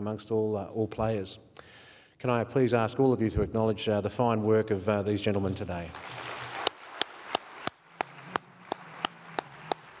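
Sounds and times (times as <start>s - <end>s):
person clapping: 6.0s - 10.0s.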